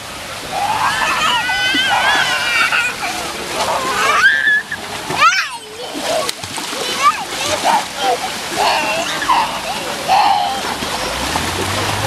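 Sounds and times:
children splashing in water: 0.0s - 12.0s
child squealing: 0.6s - 3.2s, 3.8s - 6.3s, 7.0s - 10.7s.

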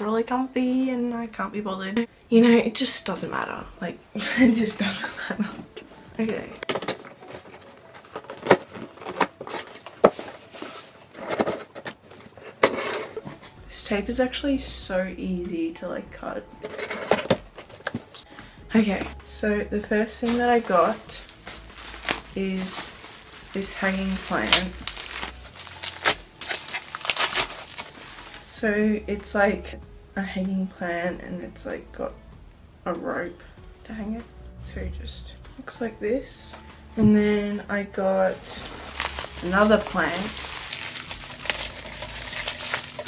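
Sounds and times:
plastic wrapping crinkling: 6.2s - 13.6s, 20.2s - 28.5s, 38.2s - 43.0s
cardboard scraping and rustling: 6.7s - 13.6s, 16.6s - 18.2s, 20.2s - 28.4s, 38.3s - 43.0s.

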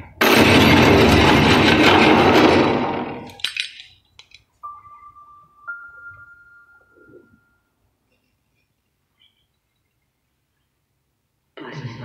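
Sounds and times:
loud crash of breaking: 0.0s - 3.6s
small clicks: 3.2s - 4.5s.

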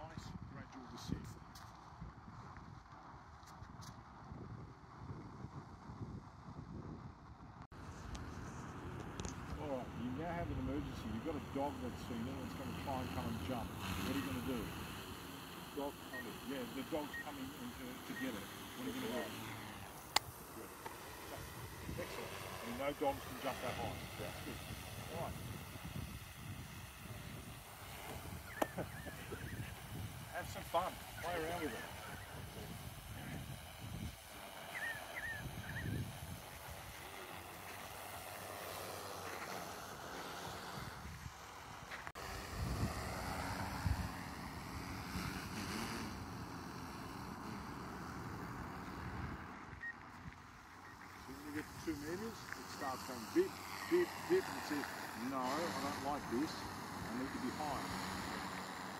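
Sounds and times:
wind buffeting microphone: 0.0s - 14.8s, 23.8s - 37.2s, 40.6s - 45.5s
distant drone rotors: 7.6s - 58.9s.

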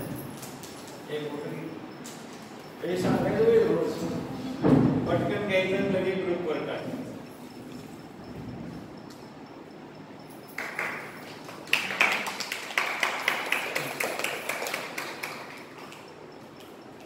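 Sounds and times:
audience applauding: 10.6s - 16.0s.

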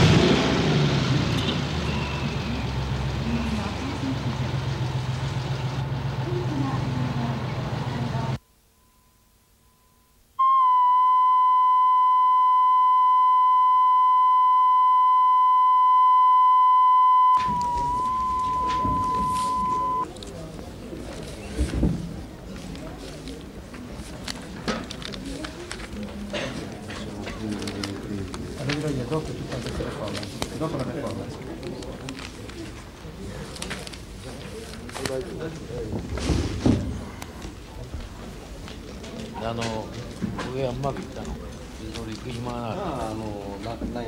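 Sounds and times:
room noise: 2.4s - 40.3s
steady test tone: 8.4s - 20.1s
tape hiss: 8.4s - 20.1s.

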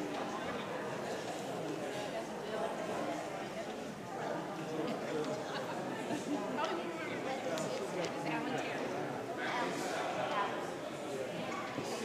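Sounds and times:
people chattering in a reverberant room: 0.0s - 12.0s.

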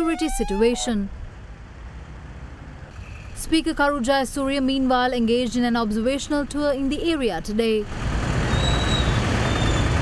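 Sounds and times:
passing traffic rumble: 0.0s - 10.0s.

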